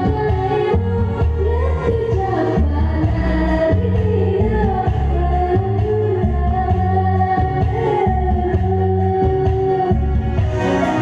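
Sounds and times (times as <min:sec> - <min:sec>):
backing track with bass line: 0:00.0 - 0:11.0
woman singing karaoke: 0:00.0 - 0:11.0.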